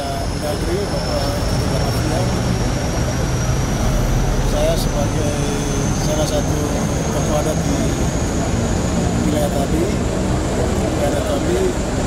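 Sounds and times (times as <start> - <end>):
aircraft engine rumble and whine: 0.0 - 12.0.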